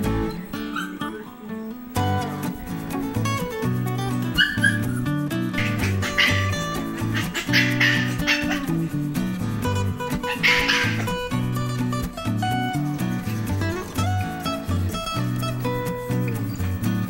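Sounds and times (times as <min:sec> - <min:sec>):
strummed acoustic guitar music: 0:00.0 - 0:17.0
puppy yipping and barking: 0:00.6 - 0:01.2, 0:04.3 - 0:08.9, 0:10.0 - 0:11.5.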